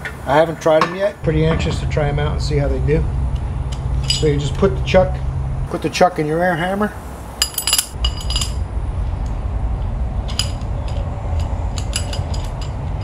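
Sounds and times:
steady low rumble: 1.2 - 13.0.

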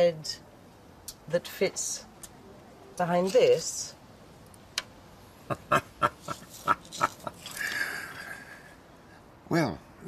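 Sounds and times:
person laughing: 5.4 - 8.7.

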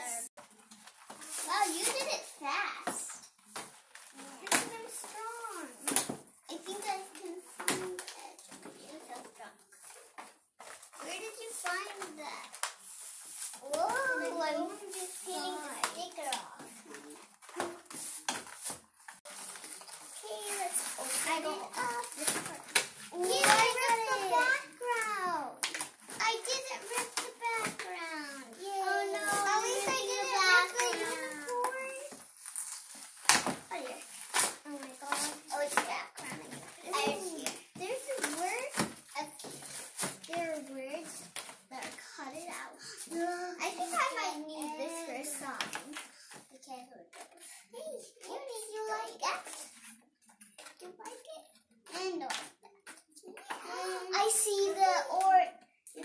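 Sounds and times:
children's voices: 0.0 - 0.3, 1.3 - 3.3, 4.1 - 9.7, 11.0 - 12.6, 13.6 - 17.9, 20.1 - 32.2, 33.7 - 49.9, 50.8 - 56.0.

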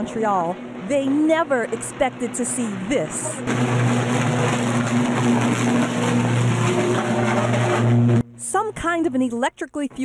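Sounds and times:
electrical arc buzzing: 3.1 - 8.2.

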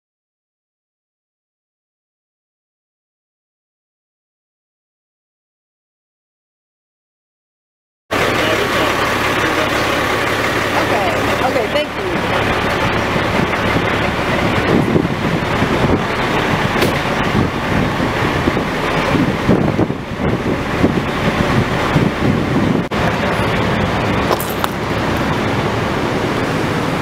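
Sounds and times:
indistinct voices: 8.1 - 14.8
constant low hum: 8.1 - 27.0
vehicle engines and traffic: 8.1 - 27.0.

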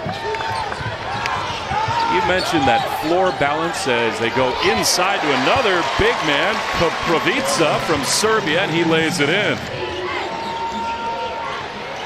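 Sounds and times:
basketball arena crowd noise: 0.0 - 12.0.

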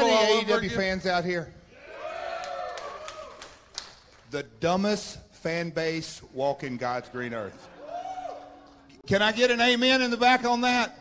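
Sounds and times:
audience cheering: 1.8 - 3.7, 7.7 - 8.8
scattered clapping: 2.4 - 4.4.

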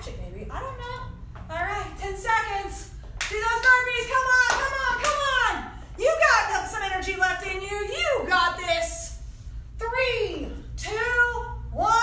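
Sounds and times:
woman's voice: 0.0 - 9.2, 9.8 - 12.0.

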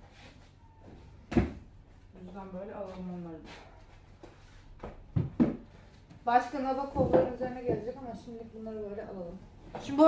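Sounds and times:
books thumping on shelf: 1.3 - 1.6, 4.8 - 5.7.

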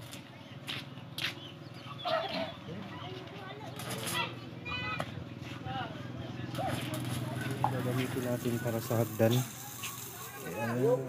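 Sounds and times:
welding arc crackling and buzzing: 6.5 - 11.0.

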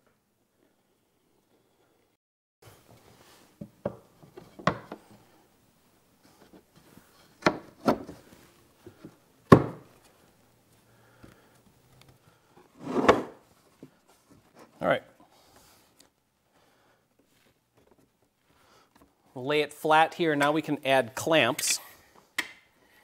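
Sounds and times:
wooden knocks and thuds: 3.6 - 5.0, 9.5 - 9.9.

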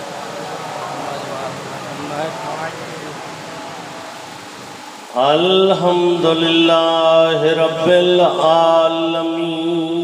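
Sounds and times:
public address hiss and hum: 0.0 - 10.0
amplified voice echoing: 5.1 - 10.0.

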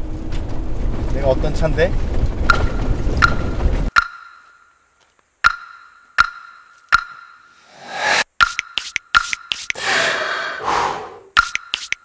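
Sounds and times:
ringing metallic ping: 2.5 - 4.8, 5.5 - 7.6.

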